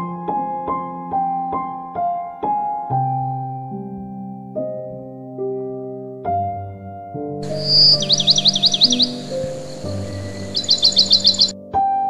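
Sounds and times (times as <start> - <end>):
slow piano music: 0.0 - 12.0
background hiss: 7.4 - 11.5
songbird whistling: 7.4 - 11.6.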